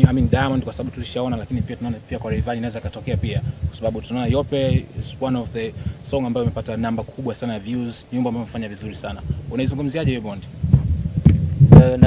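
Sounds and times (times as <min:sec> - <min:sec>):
man speaking: 0:00.0 - 0:10.6, 0:11.8 - 0:12.0
low uneven thuds: 0:00.0 - 0:12.0.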